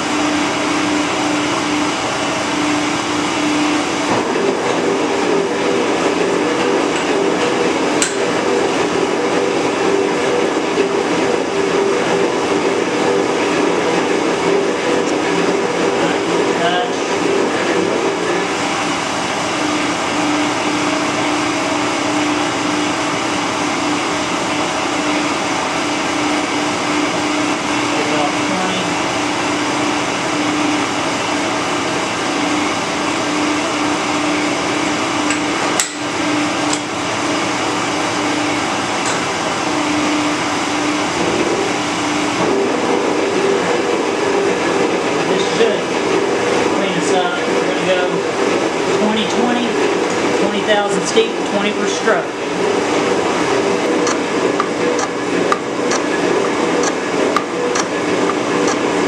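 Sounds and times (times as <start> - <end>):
metal shaper machine hum: 0.0 - 59.0.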